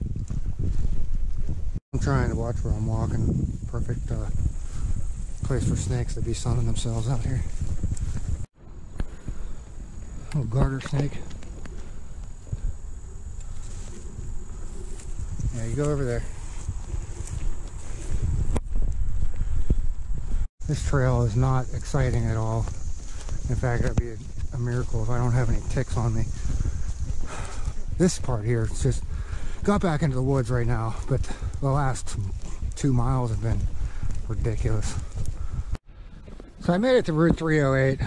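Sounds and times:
wind buffeting microphone: 0.0 - 38.0
footsteps on dry leaves: 6.2 - 29.4.

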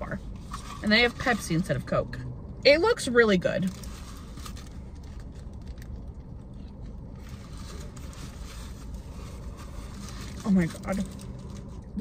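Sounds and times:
low car cabin hum: 0.0 - 12.0
paper wrapper crackling: 3.6 - 12.0.

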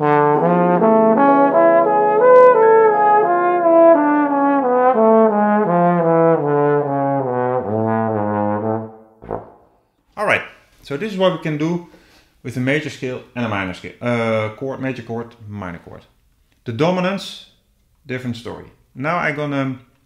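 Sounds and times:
solo trombone playing: 0.0 - 9.6.

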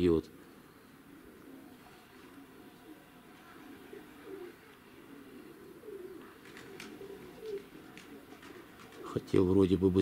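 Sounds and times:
pigeons cooing: 0.4 - 9.5.

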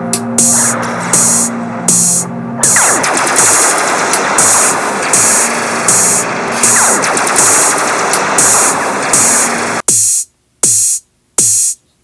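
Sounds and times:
electronic music: 0.0 - 11.8.

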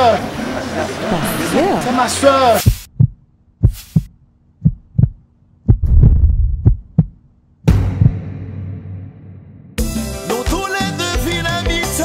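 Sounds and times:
heartbeat double thumps: 2.6 - 8.2
deep rumble: 2.9 - 7.2.

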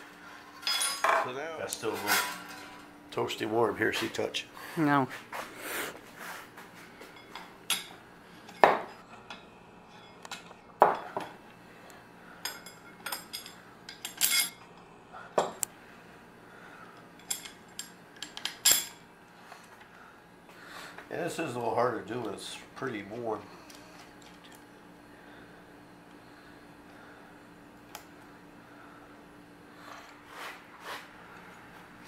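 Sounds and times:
metal tools clinking on workbench: 0.6 - 2.8, 12.5 - 14.6.

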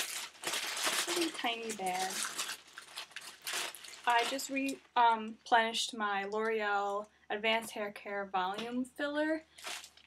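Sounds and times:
shopping bag rustling: 0.0 - 4.7, 9.6 - 10.0.

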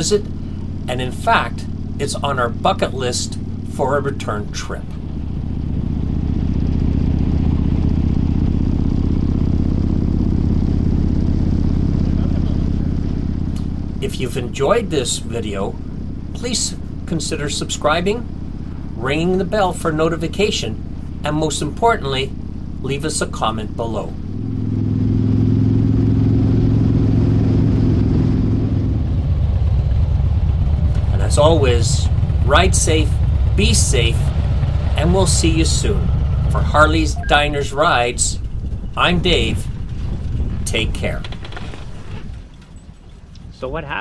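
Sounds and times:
motorcycle engine cruising: 0.0 - 44.0.

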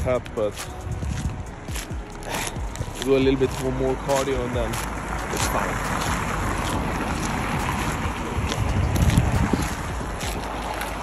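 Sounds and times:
footsteps: 0.0 - 11.0.

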